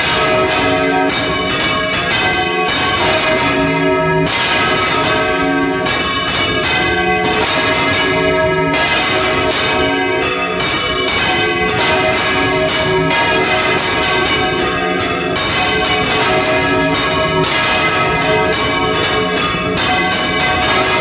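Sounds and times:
church bells pealing: 0.0s - 21.0s.

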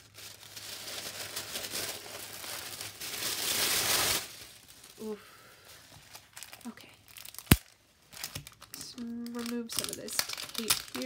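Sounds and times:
tissue paper rustling and crinkling: 0.0s - 11.0s.

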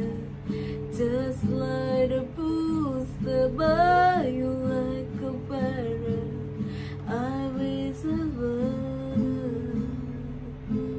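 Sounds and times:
acoustic guitar: 0.0s - 10.9s.

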